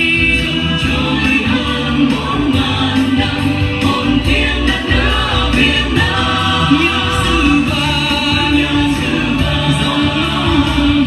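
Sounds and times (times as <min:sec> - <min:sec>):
song with singing voices: 0:00.0 - 0:11.0.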